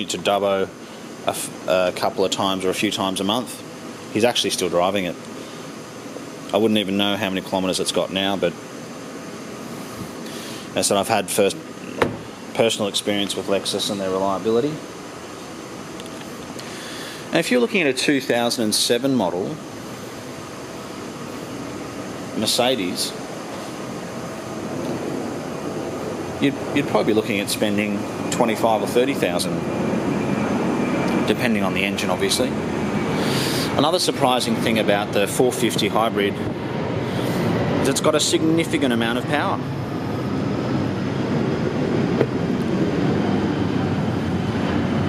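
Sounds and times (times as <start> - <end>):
steady rushing fan noise: 0.0 - 45.0
low rumbling noise: 10.8 - 45.0.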